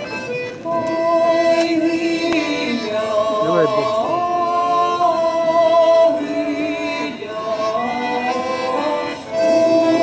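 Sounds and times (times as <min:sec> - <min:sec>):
mixed choir singing folk song: 0:00.5 - 0:10.0.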